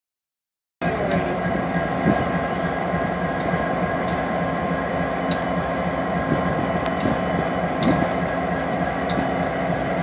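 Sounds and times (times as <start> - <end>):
diesel locomotive engines droning: 0.8 - 10.0
sharp click: 7.8 - 8.0.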